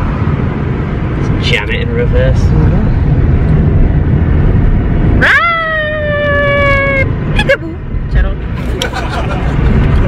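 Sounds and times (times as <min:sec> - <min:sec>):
car road rumble: 0:00.0 - 0:10.0
high-pitched mewing cry: 0:05.2 - 0:07.1.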